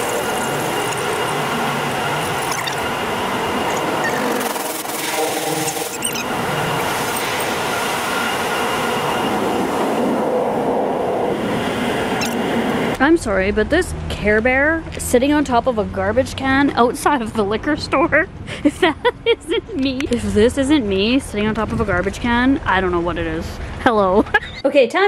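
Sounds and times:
thin high tones: 0:02.1 - 0:09.7.

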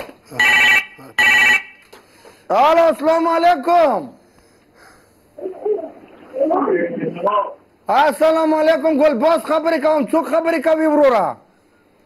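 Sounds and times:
telephone ringing: 0:00.4 - 0:01.8.

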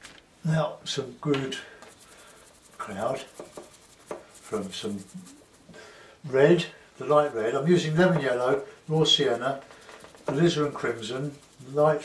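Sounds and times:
paintbrush scrubbing in palette: 0:01.4 - 0:05.8, 0:06.5 - 0:12.0.

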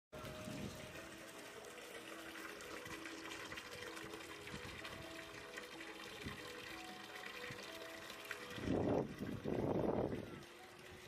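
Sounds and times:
running and lapping water: 0:00.2 - 0:11.0.

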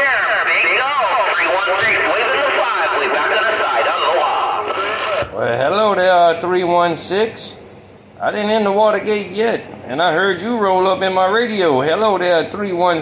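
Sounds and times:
voice over radio speaker: 0:00.0 - 0:06.0.

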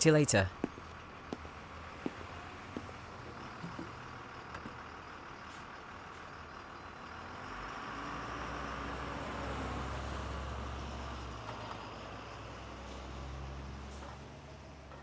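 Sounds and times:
bus engine rumbling: 0:00.0 - 0:15.0
street traffic noise: 0:00.0 - 0:15.0.

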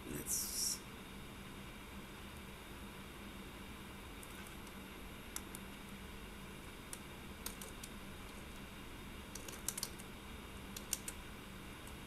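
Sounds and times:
steady low hum: 0:00.0 - 0:12.0
keyboard typing: 0:06.9 - 0:08.4, 0:09.3 - 0:10.1, 0:10.8 - 0:11.2.

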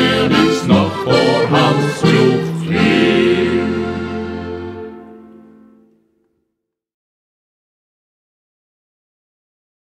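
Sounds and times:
accordion folk music: 0:00.0 - 0:06.0.

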